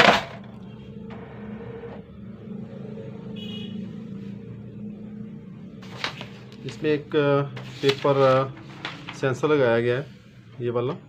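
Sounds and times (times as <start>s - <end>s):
low mechanical hum: 0.1s - 6.8s.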